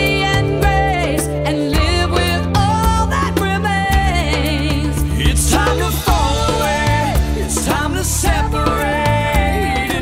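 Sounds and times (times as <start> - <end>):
live rock band: 0.0 - 10.0
woman singing with vibrato: 0.0 - 10.0.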